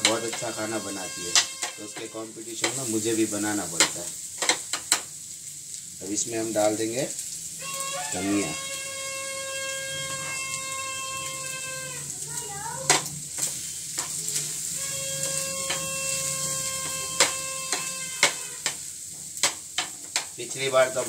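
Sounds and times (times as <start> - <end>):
metal spoon scraping a pan: 0.0 - 5.0, 7.6 - 12.0, 12.9 - 21.0
eggs sizzling in a frying pan: 0.0 - 21.0.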